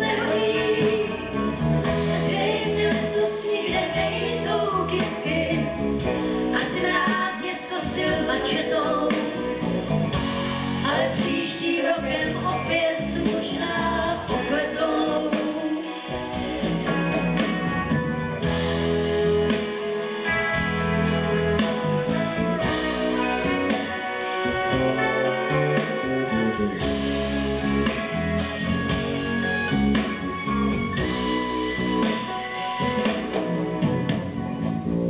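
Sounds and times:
guitar: 0.0s - 35.0s
live band playing pop: 0.0s - 35.0s.

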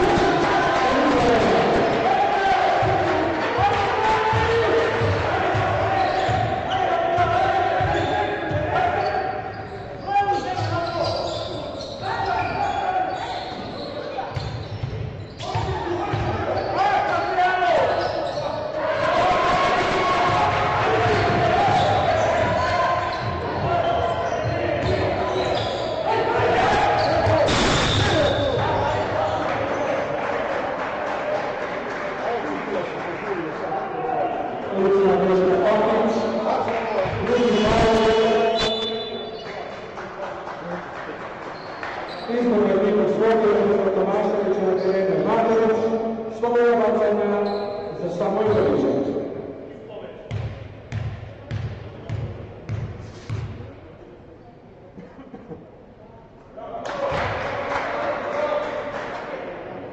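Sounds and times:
echoing voices: 0.0s - 52.8s.

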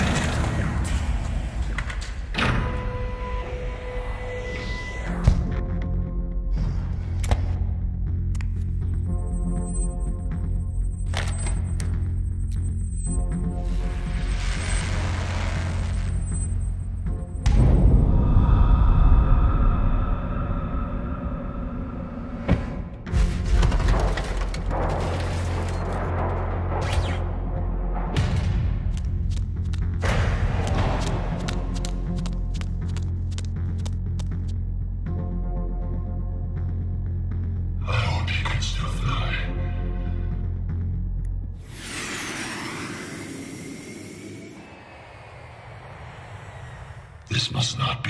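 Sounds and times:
sustained drone: 39.5s - 48.0s
high whines sliding down: 41.6s - 47.3s
dense noisy rush: 41.7s - 48.0s.

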